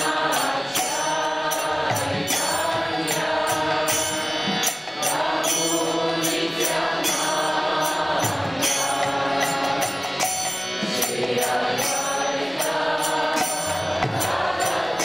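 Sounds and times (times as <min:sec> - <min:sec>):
voices chanting: 0:00.0 - 0:10.2, 0:11.0 - 0:15.0
hand cymbals beat: 0:00.0 - 0:15.0.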